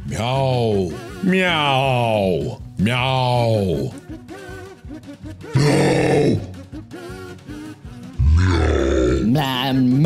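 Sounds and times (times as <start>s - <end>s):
man grunting like a burp: 5.5s - 6.6s, 8.2s - 9.3s
man imitating cat meow: 5.6s - 6.6s, 8.2s - 9.4s.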